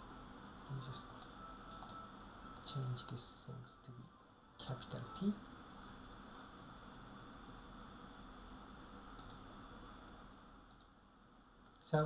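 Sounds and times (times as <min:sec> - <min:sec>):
faint room hum: 0:00.0 - 0:12.0
computer keyboard clicks: 0:01.1 - 0:02.0, 0:09.2 - 0:09.4.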